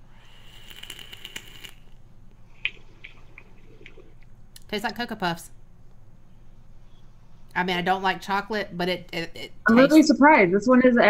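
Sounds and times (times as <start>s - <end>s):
vape coil crackling and sizzling: 0.1s - 2.1s.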